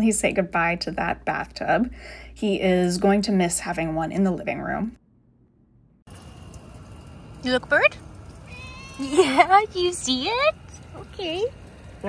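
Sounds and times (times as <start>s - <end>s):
outdoor ambience hiss: 6.0s - 12.0s.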